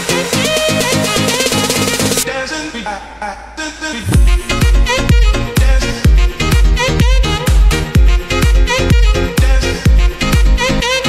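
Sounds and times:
dance music: 0.0 - 11.0
heavy kick drum: 4.0 - 10.6.

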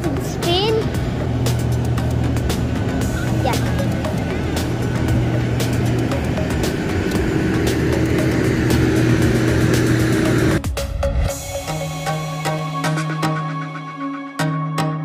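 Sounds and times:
jet aircraft drone and whine: 0.0 - 10.6.

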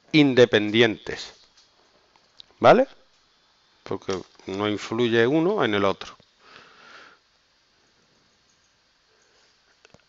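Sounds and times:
person speaking: 0.0 - 1.4, 3.8 - 6.2.

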